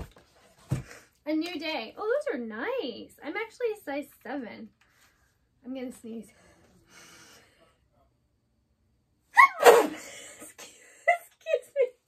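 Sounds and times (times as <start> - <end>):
woman sneezing: 9.4 - 10.1.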